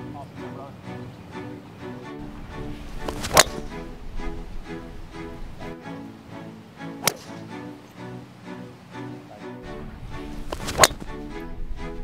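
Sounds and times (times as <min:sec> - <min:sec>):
background music: 0:00.0 - 0:12.0
golf club striking ball: 0:02.2 - 0:05.7, 0:07.0 - 0:07.6, 0:09.8 - 0:11.5.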